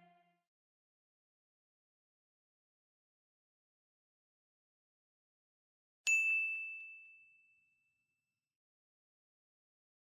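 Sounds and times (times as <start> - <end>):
bell-like ding: 6.1 - 8.1.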